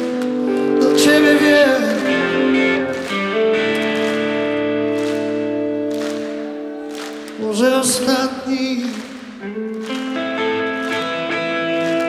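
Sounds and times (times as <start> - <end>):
guitar chords ringing: 0.0 - 7.0, 9.4 - 12.0
rock band playing slow ballad: 0.0 - 12.0.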